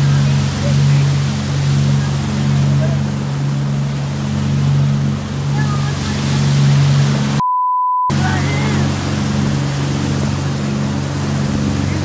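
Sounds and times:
motorboat engine drone: 0:00.0 - 0:07.4, 0:08.1 - 0:12.0
water rushing: 0:00.0 - 0:07.4, 0:08.1 - 0:12.0
wind: 0:00.0 - 0:07.4, 0:08.1 - 0:12.0.

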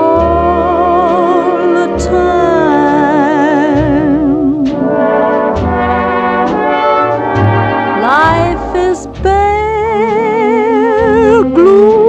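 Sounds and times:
orchestral music led by brass: 0:00.0 - 0:12.0
light beats: 0:03.7 - 0:12.0.

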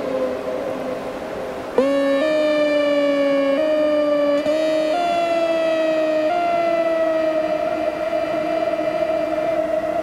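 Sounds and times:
electric melodica tones: 0:01.8 - 0:10.0.

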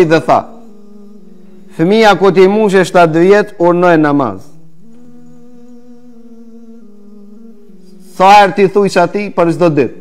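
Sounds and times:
hummed background music: 0:00.0 - 0:10.0.

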